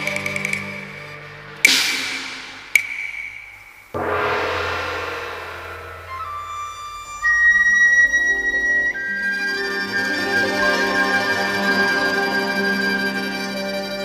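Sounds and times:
opera instrumental ensemble: 0.0s - 14.0s
cymbal crash: 1.6s - 7.4s
ringing percussion strike: 1.7s - 7.3s
high sustained melody line: 4.0s - 14.0s.

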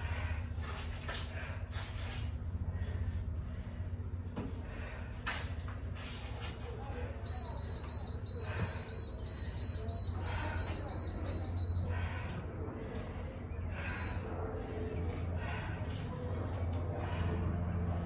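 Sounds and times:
woman breathing hard: 0.0s - 5.5s, 11.7s - 18.0s
steady low hum: 0.0s - 18.0s.

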